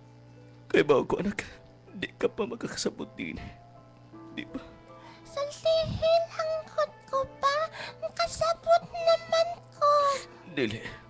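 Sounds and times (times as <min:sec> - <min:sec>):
soft background music: 0:00.0 - 0:11.0
very high-pitched voice singing: 0:05.3 - 0:10.2.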